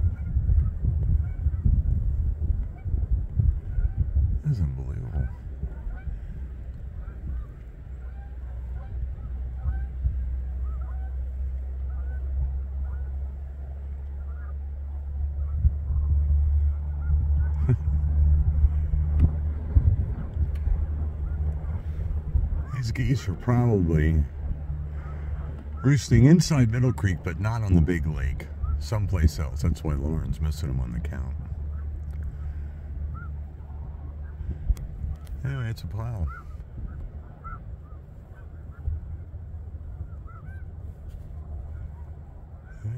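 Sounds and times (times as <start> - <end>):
low rumble: 0.0 - 42.9
snow geese calling: 2.6 - 42.9.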